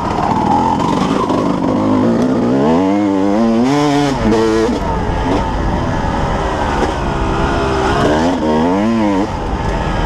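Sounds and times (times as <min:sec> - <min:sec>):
dirt bike engine revving: 0:00.0 - 0:10.0.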